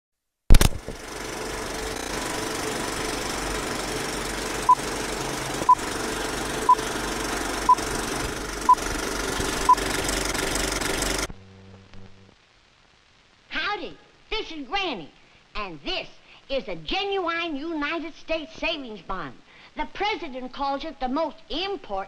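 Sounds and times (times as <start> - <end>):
sharp click: 0.5 - 1.0
film projector running: 0.6 - 11.3.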